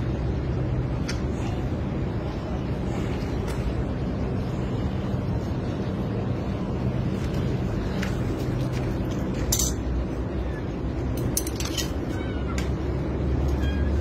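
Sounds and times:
steady low hum: 0.0 - 14.0
tools clicking against metal pipe: 9.5 - 9.8, 11.2 - 12.0.

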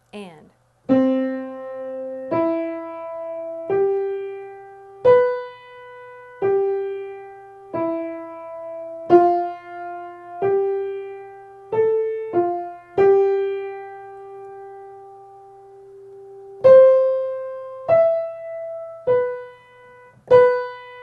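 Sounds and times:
slow piano melody: 0.9 - 21.0.

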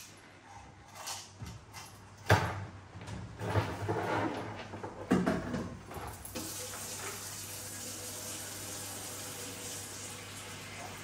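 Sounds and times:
tap water running into sink: 6.1 - 11.0.

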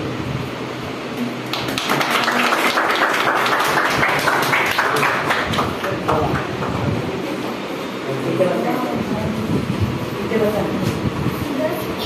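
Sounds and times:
people clapping: 1.4 - 6.9.

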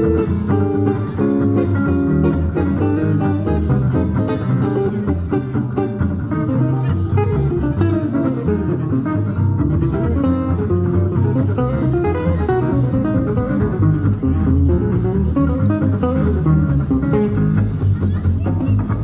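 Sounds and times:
acoustic guitars playing jazz: 0.0 - 19.0
double bass pulse: 0.0 - 19.0.

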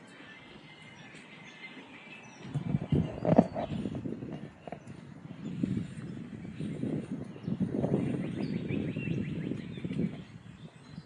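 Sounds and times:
footsteps on wooden boardwalk: 0.0 - 8.6, 9.2 - 11.0.

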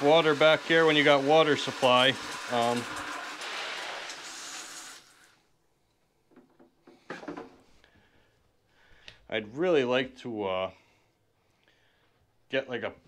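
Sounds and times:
hose spraying into bucket: 0.0 - 5.4.

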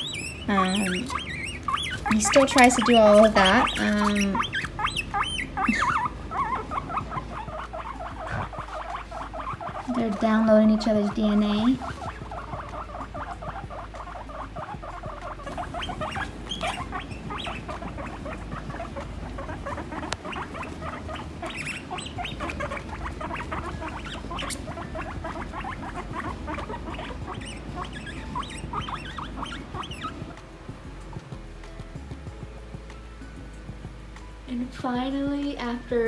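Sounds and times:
guinea pigs purring and rumbling: 0.0 - 36.0.

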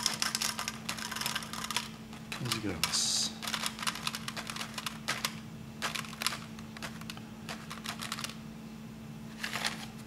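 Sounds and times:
pellets rattling into plastic cup: 0.0 - 8.4, 9.4 - 9.9.

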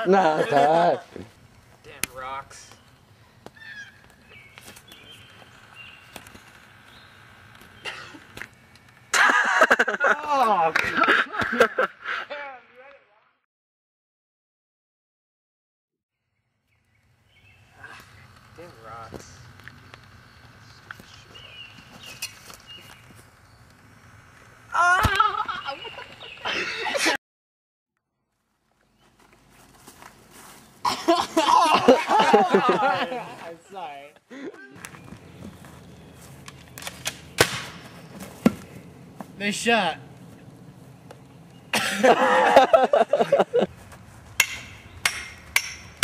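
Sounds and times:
sharp cracks: 36.4 - 38.0.

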